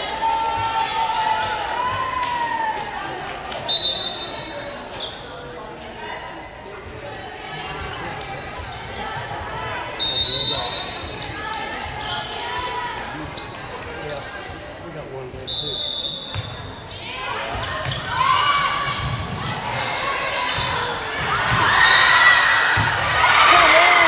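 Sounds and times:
voices echoing in a gym: 0:00.0 - 0:24.0
referee whistle: 0:03.7 - 0:04.6, 0:10.0 - 0:11.2, 0:15.5 - 0:17.0.

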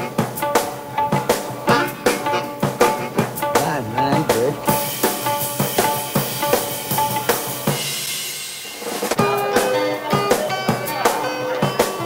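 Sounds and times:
drum kit beat: 0:00.0 - 0:12.0.

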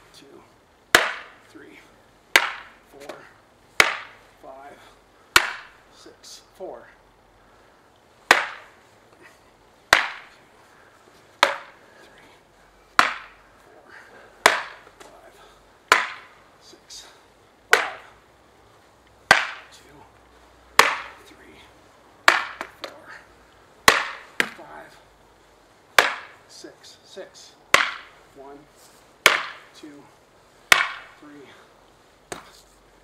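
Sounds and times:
practice swords clacking: 0:00.9 - 0:01.6, 0:02.3 - 0:04.3, 0:05.3 - 0:05.8, 0:08.2 - 0:12.3, 0:12.9 - 0:17.1, 0:17.7 - 0:18.2, 0:19.2 - 0:19.8, 0:20.7 - 0:21.4, 0:22.2 - 0:24.9, 0:25.9 - 0:26.6, 0:27.4 - 0:28.2, 0:29.2 - 0:29.9, 0:30.7 - 0:31.2, 0:32.3 - 0:32.6.

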